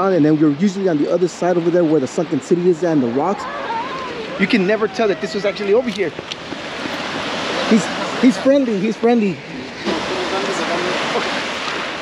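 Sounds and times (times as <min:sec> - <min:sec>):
ocean surf breaking on sand: 0:00.0 - 0:12.0.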